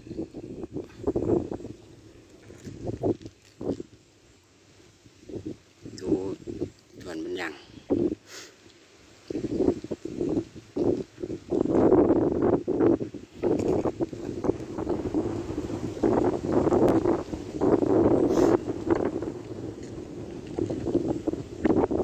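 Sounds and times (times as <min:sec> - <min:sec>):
wind buffeting microphone: 0:00.0 - 0:04.1, 0:05.0 - 0:08.2, 0:09.1 - 0:22.0.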